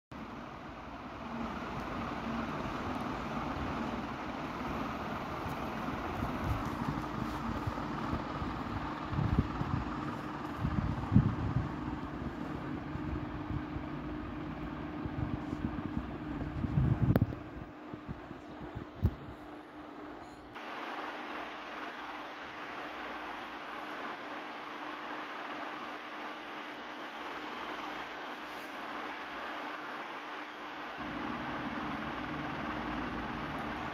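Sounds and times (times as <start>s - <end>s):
faint steady hum: 0.2s - 33.9s
steady background whir: 0.2s - 33.9s.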